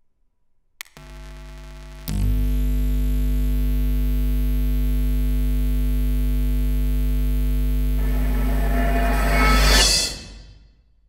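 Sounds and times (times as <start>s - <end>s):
crackling noise: 0.8s - 9.6s
steady electronic tone chord: 1.0s - 10.6s
deep bass drone: 6.9s - 10.4s.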